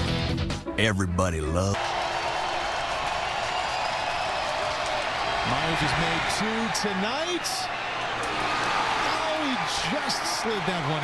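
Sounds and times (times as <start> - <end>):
distant stadium crowd noise: 1.8 - 11.0.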